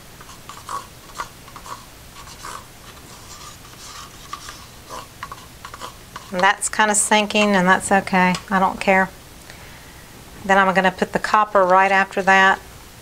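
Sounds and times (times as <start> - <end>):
stir stick scraping plastic cup: 0.0 - 7.5.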